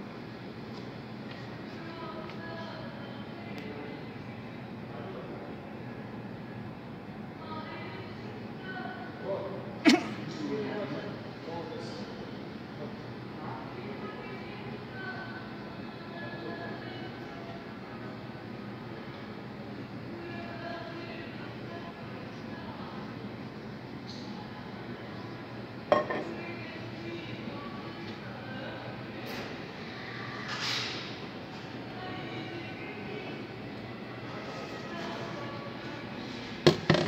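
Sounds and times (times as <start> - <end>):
faint murmur of voices: 0.0 - 37.0
cafe rumble and hum: 12.0 - 37.0.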